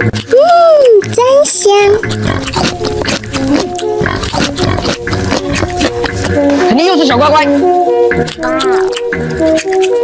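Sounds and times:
wet chewing and slurping: 0.0s - 6.5s, 8.1s - 10.0s
background music: 0.0s - 10.0s.

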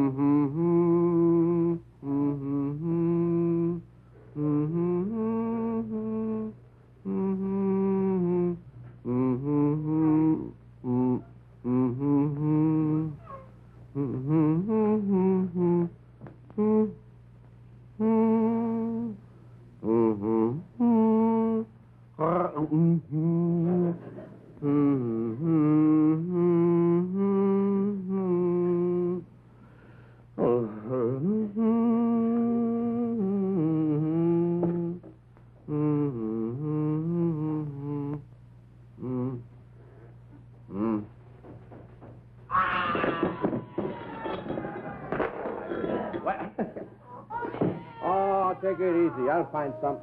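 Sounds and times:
man humming lullaby: 0.0s - 17.1s, 18.0s - 19.2s, 19.8s - 29.3s, 30.4s - 38.3s, 38.9s - 41.2s
comic baby crying sound effect: 42.5s - 44.4s.

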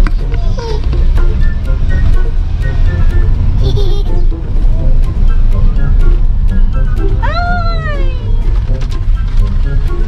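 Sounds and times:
background music: 0.0s - 10.0s
moving car rumble: 0.0s - 10.0s.

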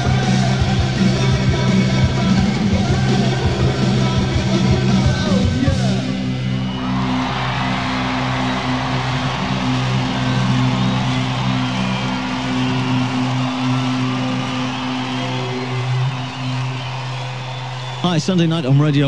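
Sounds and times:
rock chord ringing over distortion: 0.0s - 19.0s.

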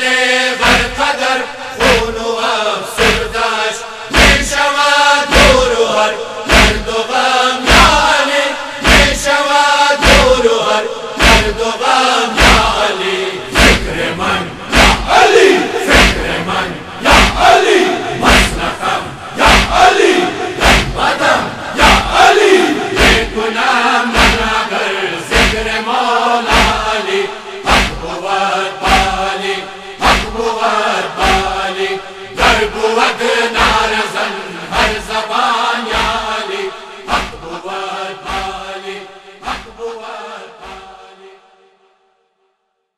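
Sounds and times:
men's chorus chanting: 0.0s - 41.8s.

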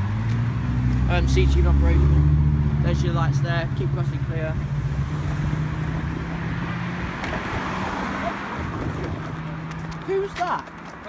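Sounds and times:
car engine hum and tyre noise: 0.0s - 11.0s.

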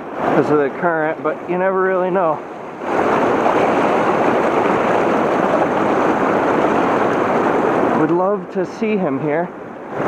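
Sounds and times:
fast river water rushing: 0.0s - 10.0s.

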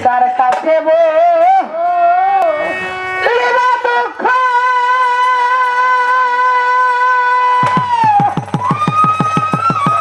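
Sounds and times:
hand drum beating quickly: 7.6s - 10.0s.

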